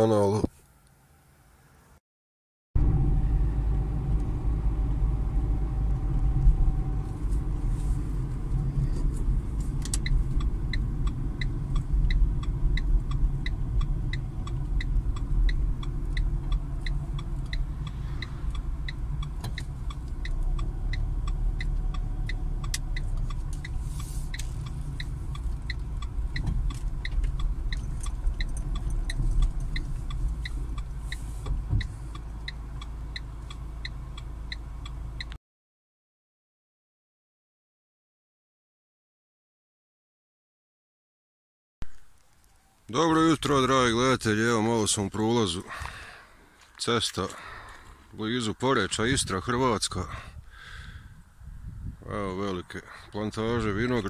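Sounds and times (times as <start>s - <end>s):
car interior engine rumble: 2.8s - 35.4s, 41.8s - 54.0s
turn signal ticking: 3.8s - 35.4s.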